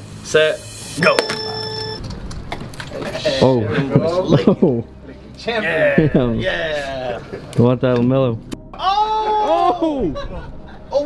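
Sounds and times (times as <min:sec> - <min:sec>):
steady electronic beep: 0:00.7 - 0:02.0.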